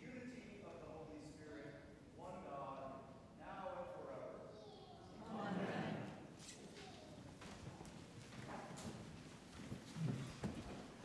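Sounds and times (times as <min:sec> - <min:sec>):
footsteps on hard floor: 0:07.4 - 0:11.0.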